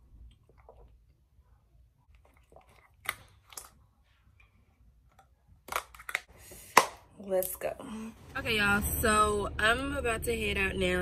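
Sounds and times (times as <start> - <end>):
plastic bottle clicks and crackles: 5.1 - 7.0.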